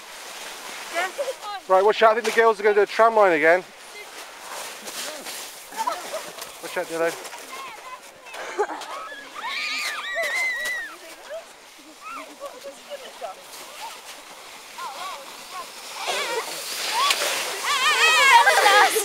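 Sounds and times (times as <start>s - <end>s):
snow hissing under sledges: 0.0s - 19.0s
children shrieking and laughing: 7.5s - 12.4s, 14.7s - 19.0s.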